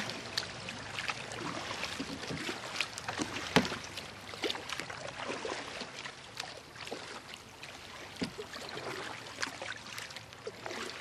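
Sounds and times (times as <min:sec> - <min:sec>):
paddles dipping through water: 0:00.0 - 0:11.0
water dripping off paddles: 0:00.0 - 0:11.0.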